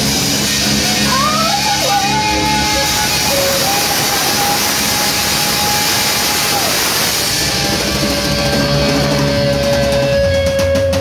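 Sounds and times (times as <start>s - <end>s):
distorted electric guitar note: 0.0s - 11.0s
live rock band: 0.0s - 11.0s.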